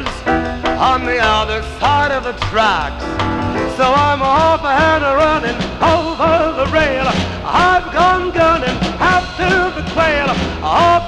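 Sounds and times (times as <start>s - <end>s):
up-tempo swing band music: 0.0s - 11.0s.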